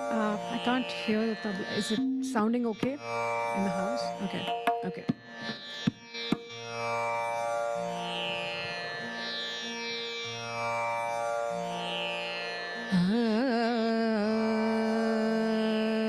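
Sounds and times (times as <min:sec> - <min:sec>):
person singing: 0:12.9 - 0:16.0.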